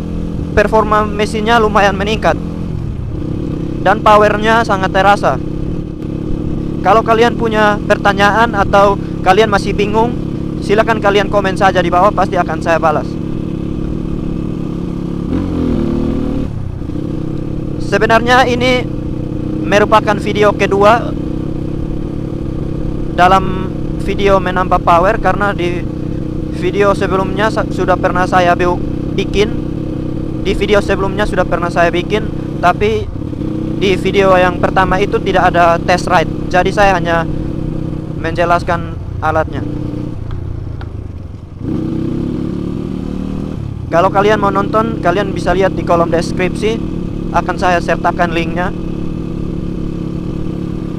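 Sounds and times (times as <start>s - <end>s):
motorcycle engine running: 0.0s - 50.9s.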